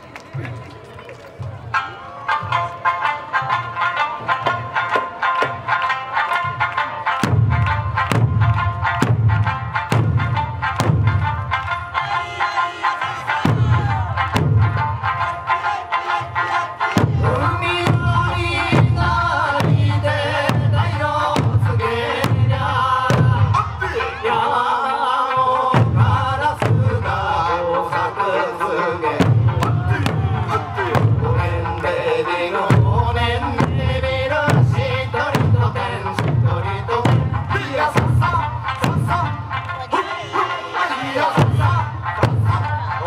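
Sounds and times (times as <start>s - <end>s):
folk dance music: 0.0s - 43.0s
large barrel drums beating: 4.2s - 12.2s, 13.0s - 24.1s, 25.7s - 27.5s, 29.0s - 39.7s, 41.2s - 43.0s.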